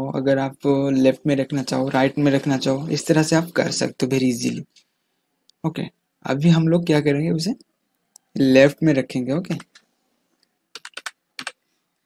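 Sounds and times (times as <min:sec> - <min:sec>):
computer keyboard typing: 0:09.5 - 0:09.9, 0:10.7 - 0:11.6.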